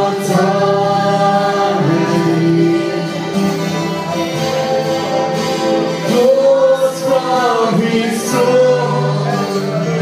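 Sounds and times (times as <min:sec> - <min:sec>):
choir singing held notes: 0:00.0 - 0:10.0.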